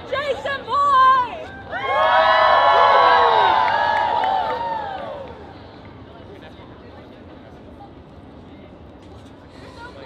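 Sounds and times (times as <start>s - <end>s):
crowd cheering and whooping: 1.4s - 5.5s.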